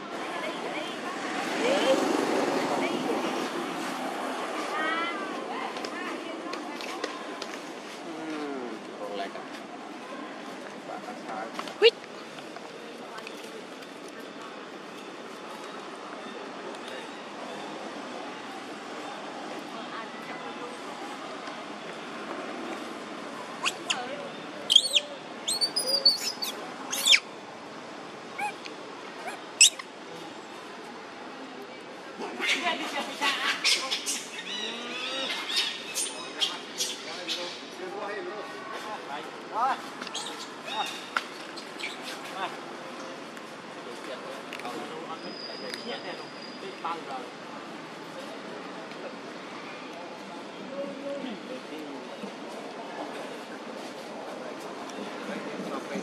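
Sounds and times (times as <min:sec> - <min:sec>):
background noise: 0:00.0 - 0:56.0
pitched squealing call: 0:23.6 - 0:24.1, 0:24.7 - 0:27.2, 0:28.3 - 0:28.6, 0:29.2 - 0:29.9
high chirping calls: 0:23.6 - 0:27.3, 0:29.3 - 0:29.9.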